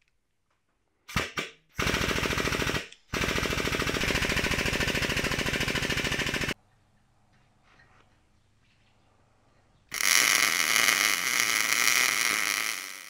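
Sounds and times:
welding arc crackling: 9.9s - 13.0s.

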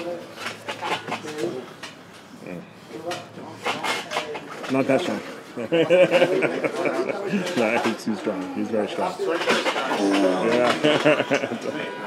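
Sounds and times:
background voices talking: 0.0s - 12.0s.

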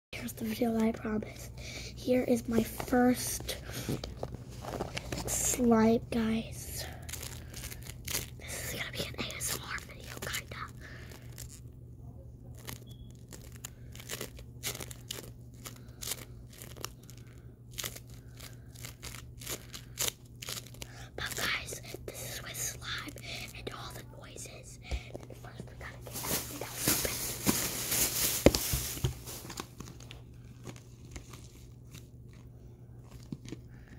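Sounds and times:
person whispering: 5.2s - 7.0s, 8.4s - 11.0s, 21.0s - 27.4s
bead slime crackling: 6.3s - 11.6s, 12.5s - 21.6s.

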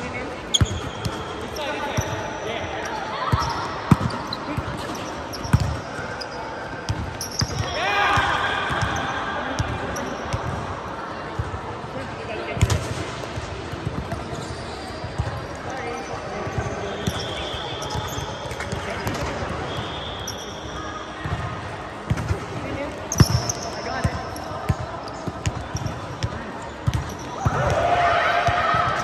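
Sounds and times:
players' voices: 0.0s - 29.0s.

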